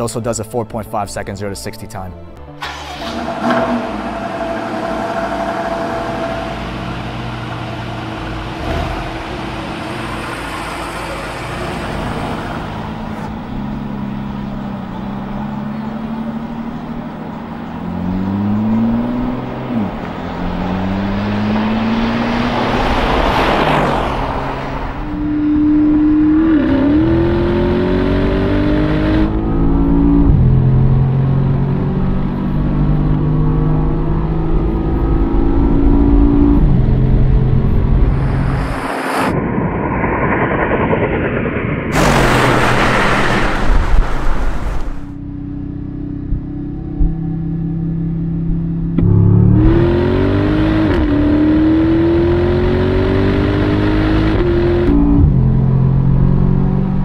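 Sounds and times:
engines accelerating at full throttle: 0:02.6 - 0:57.0.

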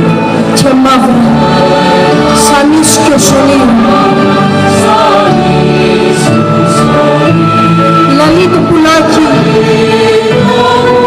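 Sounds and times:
choir singing sustained notes: 0:00.0 - 0:11.0
orchestra playing: 0:00.0 - 0:11.0.

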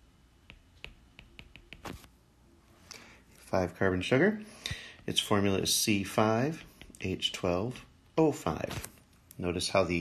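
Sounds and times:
marker ticking on surface: 0:00.4 - 0:02.0
marker stroke: 0:00.5 - 0:02.1.

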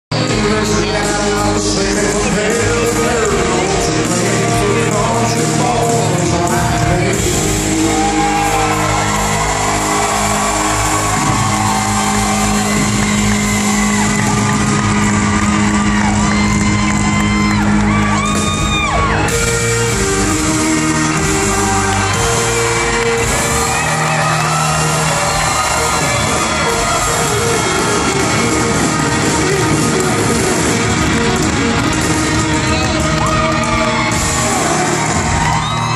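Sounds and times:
lead singer singing: 0:00.1 - 0:14.1
live country band playing: 0:00.1 - 0:35.9.

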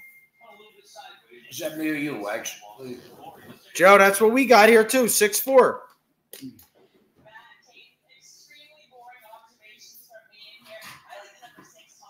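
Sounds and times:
faint voices: 0:00.4 - 0:04.4.

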